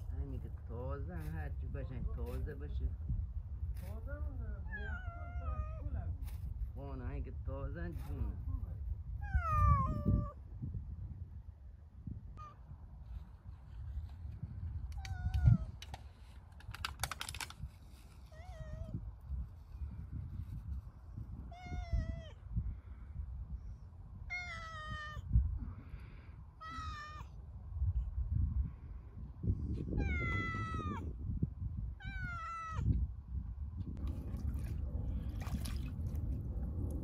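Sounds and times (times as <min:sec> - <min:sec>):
cat meowing: 0:04.7 - 0:05.9, 0:09.2 - 0:10.4, 0:21.5 - 0:22.4, 0:24.3 - 0:25.2, 0:26.6 - 0:27.3, 0:30.0 - 0:31.0, 0:32.0 - 0:32.9.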